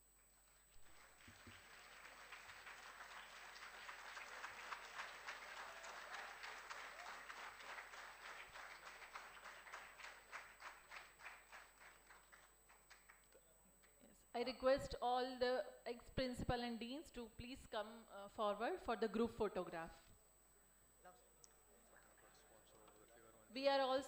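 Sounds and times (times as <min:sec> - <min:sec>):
people clapping: 0:00.0 - 0:14.0.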